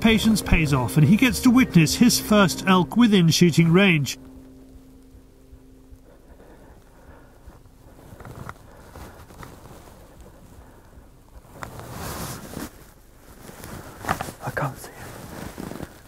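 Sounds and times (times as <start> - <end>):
faint low hum: 0.0 - 16.0
rustling: 4.2 - 16.0.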